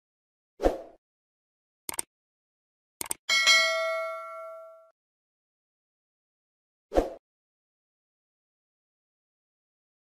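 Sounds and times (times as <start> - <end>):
mouse clicks: 1.9 - 2.1, 3.0 - 3.2
notification bell ding: 3.3 - 4.9.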